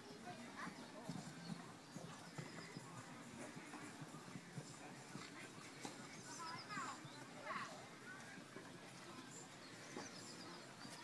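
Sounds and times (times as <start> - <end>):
horse hoofbeats on grass: 0.6 - 11.0.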